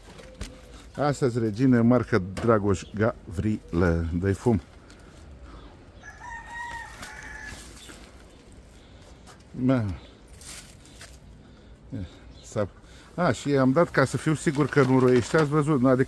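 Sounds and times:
rooster crowing: 6.0 - 7.9.

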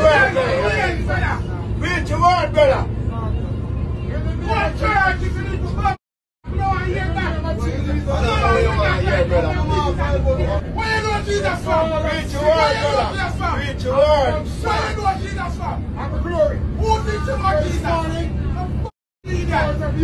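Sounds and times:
man's raised voice: 0.0 - 3.0, 4.4 - 20.0
bus engine rumble: 0.0 - 20.0
passengers talking: 0.0 - 20.0.

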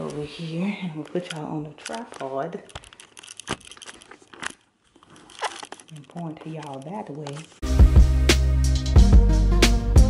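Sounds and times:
camera handling clicks and rubbing: 1.0 - 7.6.

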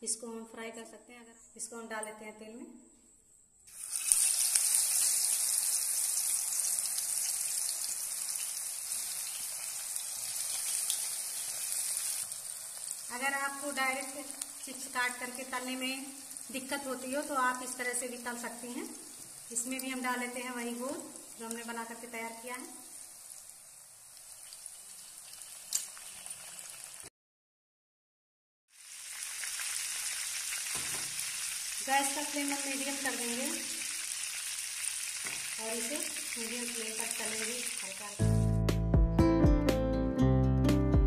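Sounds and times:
food deep-frying in hot oil: 3.7 - 27.1, 28.7 - 38.2
sharp pop of oil: 30.7 - 31.2.

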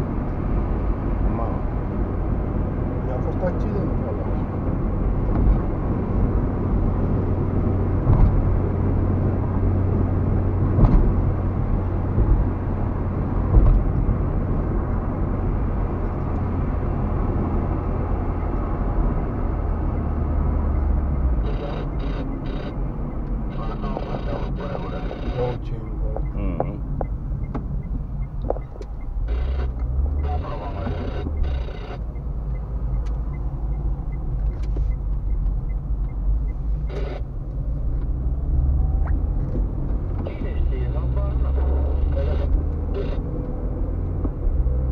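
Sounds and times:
car road and engine rumble: 0.0 - 44.9.

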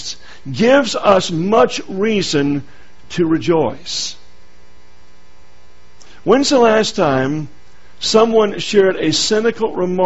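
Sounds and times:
man speaking: 0.0 - 4.3, 6.2 - 10.0
electrical mains hum: 0.0 - 10.0.

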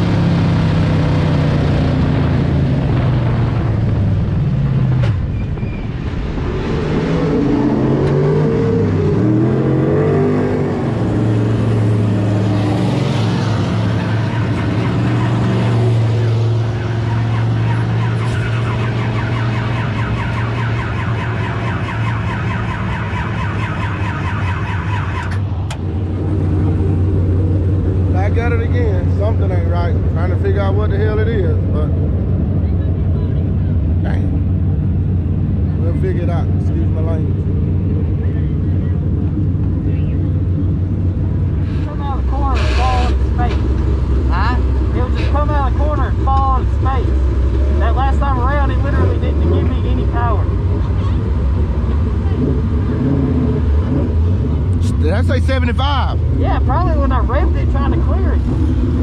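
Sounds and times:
race car engine: 0.0 - 59.0
voices: 41.7 - 52.9, 54.7 - 59.0.

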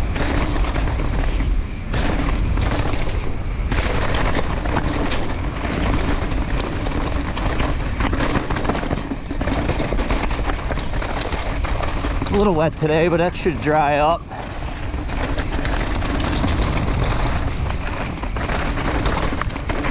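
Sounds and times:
bike rattling and clattering: 0.0 - 19.9
bike tyres rumbling over dirt: 0.0 - 19.9.

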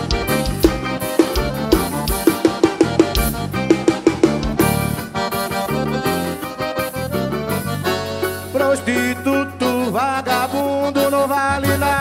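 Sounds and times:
accordion melody: 0.0 - 12.0
steady bass line: 0.0 - 12.0.

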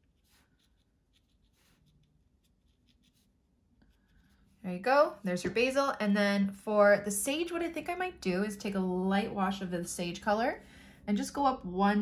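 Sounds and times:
brush strokes on paper: 0.0 - 4.7.

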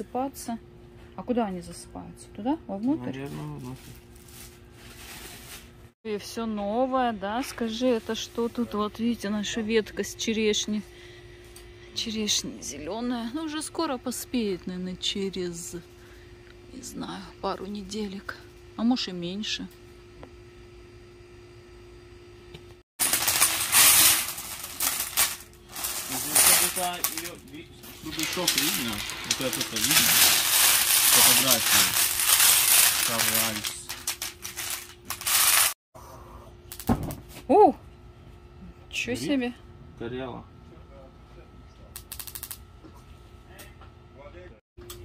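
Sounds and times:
glass beads clattering into metal bowl: 23.0 - 35.7.

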